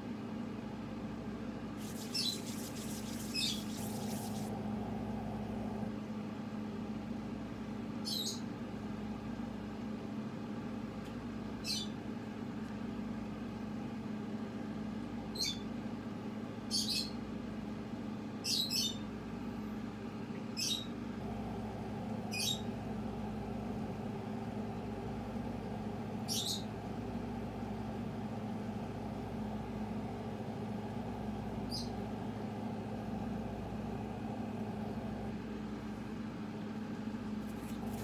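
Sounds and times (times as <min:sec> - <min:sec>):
steady low hum: 0:00.0 - 0:10.0, 0:17.1 - 0:38.0.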